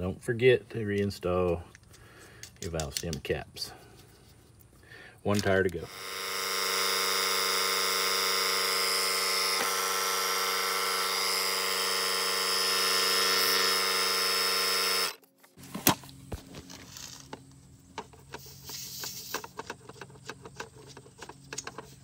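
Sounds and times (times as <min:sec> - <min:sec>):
air compressor buzzing hum: 0:05.9 - 0:22.0.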